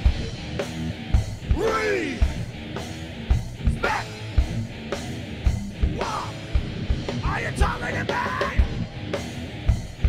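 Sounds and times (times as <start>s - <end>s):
distorted electric guitar: 0.0s - 10.0s
drum kit: 0.0s - 10.0s.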